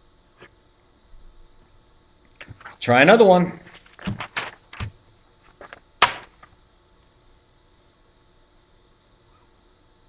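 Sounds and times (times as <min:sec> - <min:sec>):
low steady hum: 0:00.0 - 0:10.0
sharp knock: 0:06.0 - 0:06.4.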